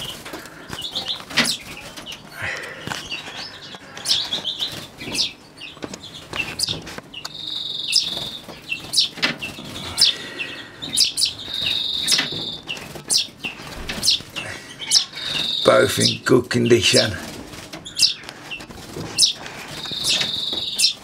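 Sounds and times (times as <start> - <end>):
finches chirping: 0.0 - 21.0
high bird trills: 0.0 - 21.0.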